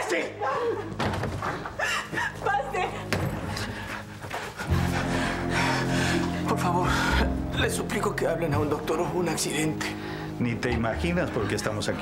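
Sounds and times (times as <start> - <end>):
sustained low chord: 4.6 - 12.0.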